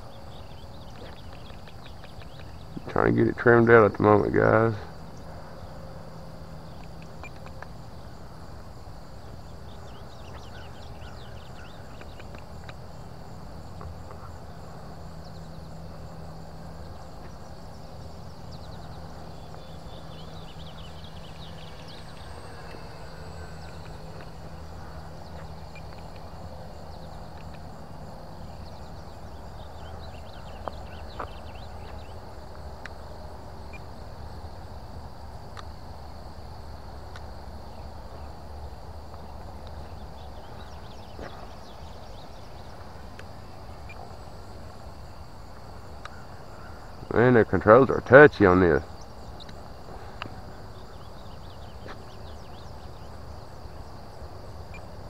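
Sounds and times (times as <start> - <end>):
insects droning: 0.0 - 55.0
low steady hum: 0.0 - 55.0
faint high chirps: 18.4 - 27.6.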